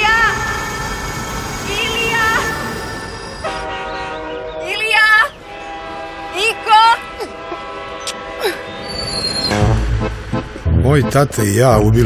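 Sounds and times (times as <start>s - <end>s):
train horn: 3.0s - 9.8s
person's voice: 10.7s - 12.0s.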